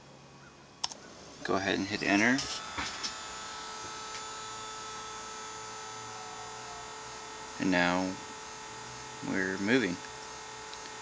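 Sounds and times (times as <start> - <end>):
stepper motors whining: 0.8 - 11.0.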